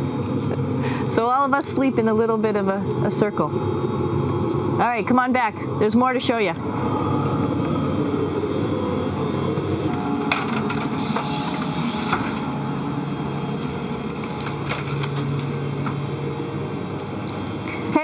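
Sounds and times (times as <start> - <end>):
cabin fans and equipment noise: 0.0 - 18.0
low hum: 0.0 - 18.0.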